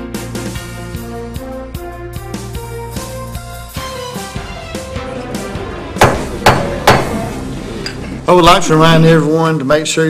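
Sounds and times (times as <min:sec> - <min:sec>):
wooden gavel knocks: 0:06.0 - 0:07.2.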